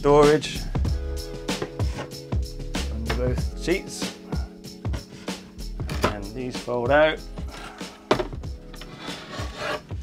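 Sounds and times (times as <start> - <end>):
wooden seat knocking: 8.1 - 8.5
wood scraping on wood: 8.8 - 10.0.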